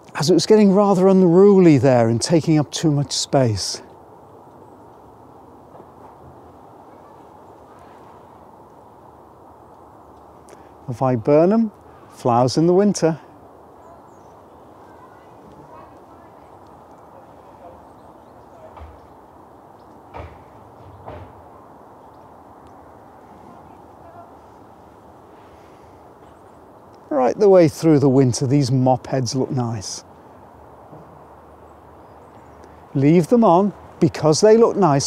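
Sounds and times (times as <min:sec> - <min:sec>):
low background noise: 0:00.0 - 0:35.0
low outdoor background noise: 0:00.0 - 0:35.0.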